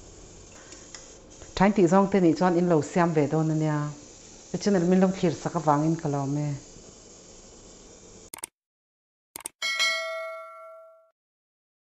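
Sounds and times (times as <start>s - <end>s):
notification bell ding: 9.6s - 11.1s.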